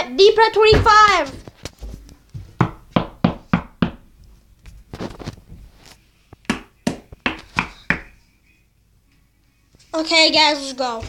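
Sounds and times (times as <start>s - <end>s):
sharp knocks: 2.6s - 4.1s, 6.4s - 8.1s.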